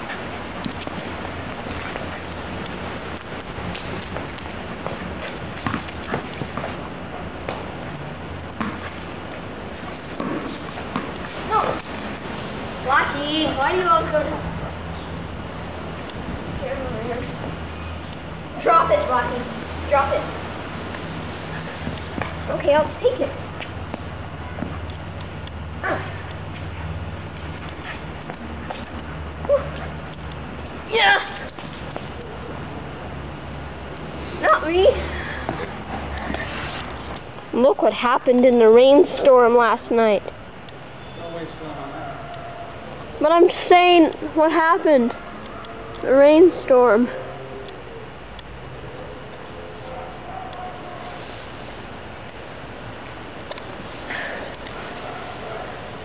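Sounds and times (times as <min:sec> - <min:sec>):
footsteps on stone paving: 0:00.0 - 0:12.4, 0:20.8 - 0:32.7, 0:35.4 - 0:37.5
dog's paws on stone: 0:00.0 - 0:14.4, 0:15.9 - 0:32.7
dog barking: 0:41.8 - 0:42.9, 0:49.5 - 0:51.2, 0:54.8 - 0:55.9.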